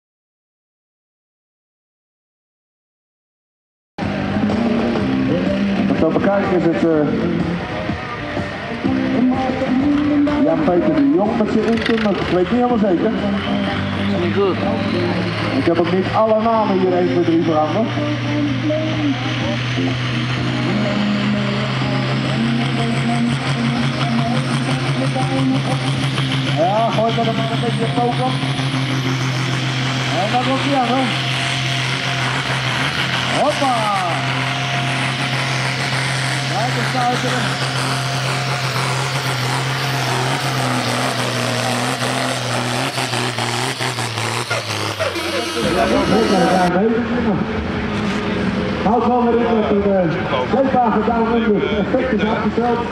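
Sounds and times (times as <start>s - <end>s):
high whine rising in pitch: 4.0s - 49.9s
tractor diesel engine under load: 4.0s - 52.9s
commentator talking: 5.3s - 7.6s, 8.9s - 19.8s, 20.7s - 28.6s, 30.0s - 31.2s, 33.3s - 34.4s, 36.4s - 37.7s, 45.1s - 47.6s, 48.8s - 52.9s
man speaking: 14.1s - 14.8s, 45.3s - 47.5s.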